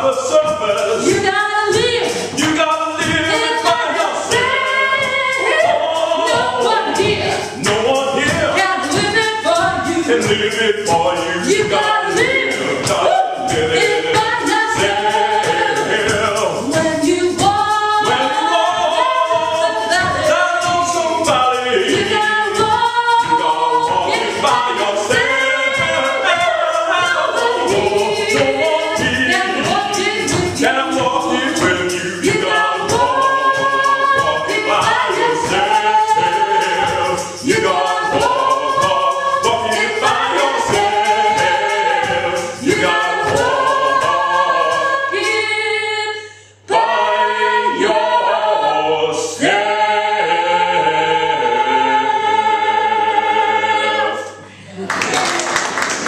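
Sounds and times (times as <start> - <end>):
woman and man singing a cappella: 0.0 - 54.8.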